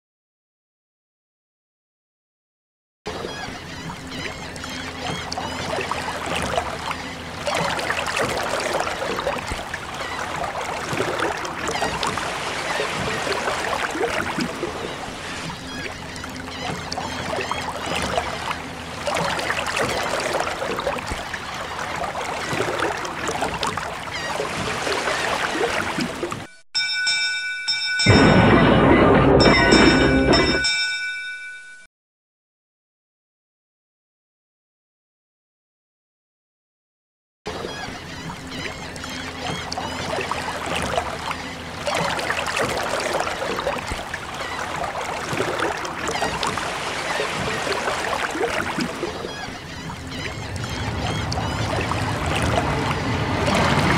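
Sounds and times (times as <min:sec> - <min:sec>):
water splashing and trickling: 0:03.1 - 0:26.5, 0:37.5 - 0:53.9
ringing bell-like tone: 0:26.8 - 0:31.9.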